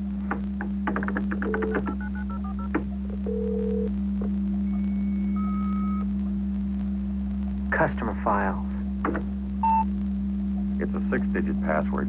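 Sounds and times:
modem carrier tones: 0:09.6 - 0:09.9
touch-tone dialling beeps: 0:09.6 - 0:09.9.

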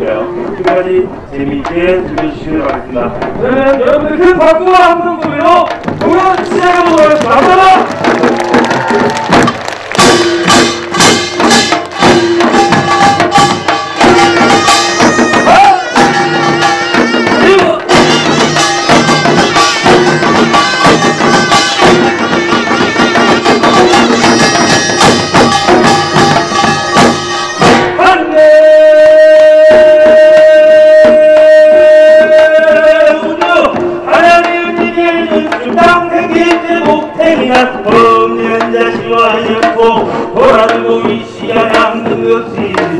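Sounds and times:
percussion ensemble drumming: 0:00.2 - 0:42.9.

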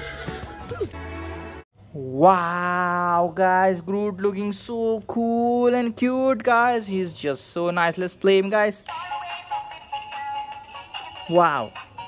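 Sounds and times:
toy playing synthesized tune: 0:08.9 - 0:12.0.

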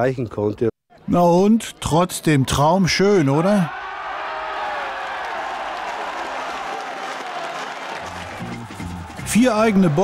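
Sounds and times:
stadium crowd cheering and applauding: 0:03.6 - 0:10.0.

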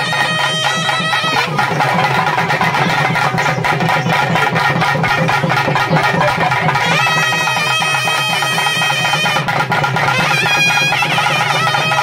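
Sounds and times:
drum band playing rapid beat: 0:00.0 - 0:12.0
piped melody: 0:00.0 - 0:12.0.

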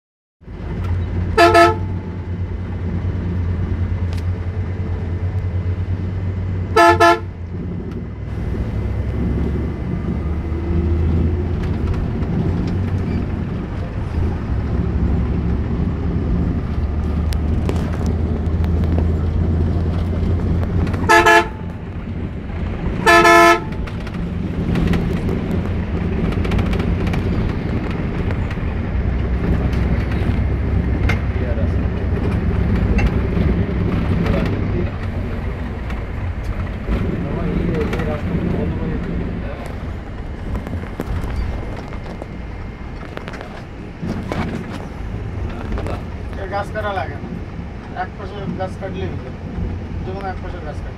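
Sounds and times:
bus engine and road rumble: 0:00.4 - 0:50.9
bus horn blasts: 0:01.3 - 0:02.2, 0:06.7 - 0:07.4, 0:20.9 - 0:21.8, 0:23.0 - 0:24.0.

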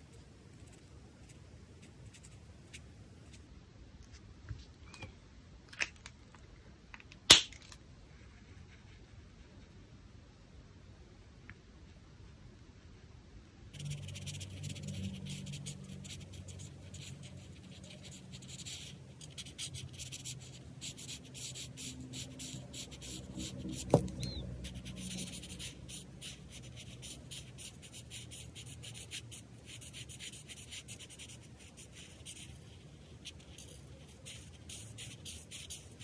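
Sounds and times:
marker scratching on paper: 0:13.7 - 0:36.0.

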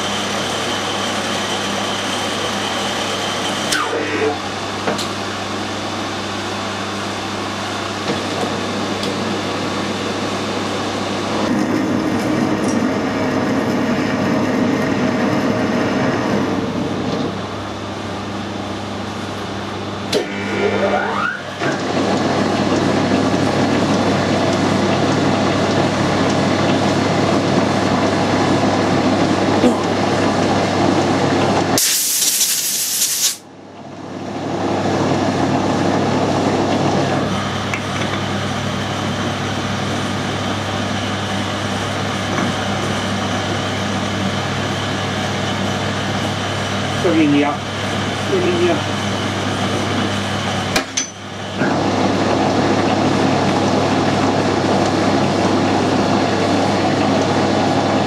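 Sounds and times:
lathe humming with gear whine: 0:00.0 - 0:31.5
loud hiss: 0:31.8 - 0:33.4.

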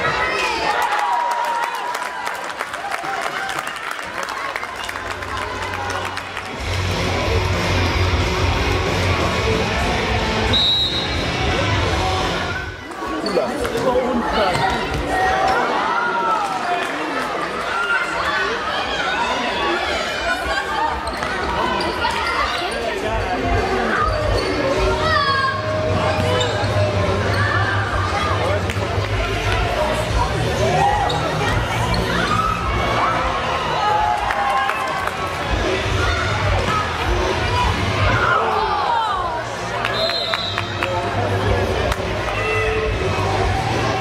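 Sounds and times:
spectators' voices: 0:00.0 - 0:44.0
shoes squeaking on floor: 0:20.9 - 0:22.8
echoing shouts: 0:30.6 - 0:40.8.

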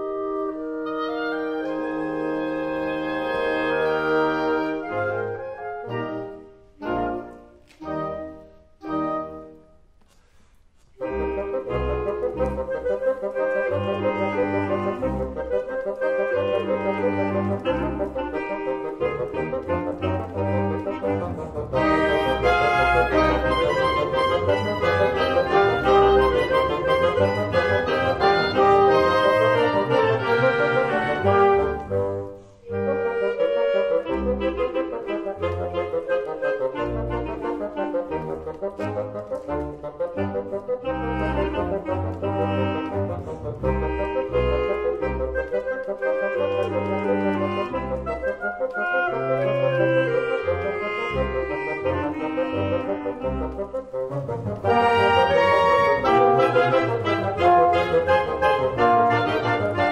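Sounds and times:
wind ensemble playing sustained chords: 0:11.0 - 0:59.9.

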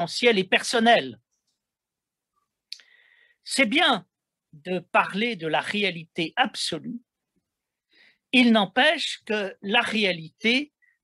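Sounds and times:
mouth click: 0:02.7 - 0:02.9
faint breath: 0:02.8 - 0:03.4, 0:07.7 - 0:08.3.

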